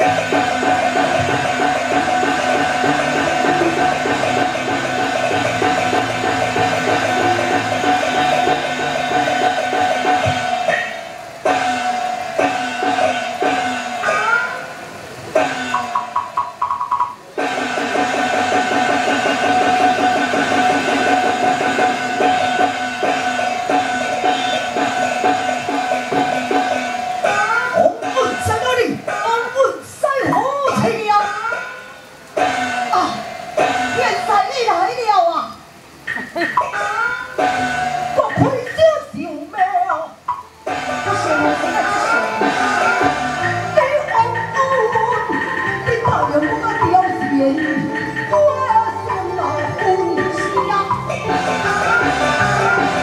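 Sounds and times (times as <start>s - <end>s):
drum and wooden clappers: 0.0s - 14.4s, 15.3s - 29.3s
sustained melody line: 0.0s - 29.2s, 40.2s - 53.0s.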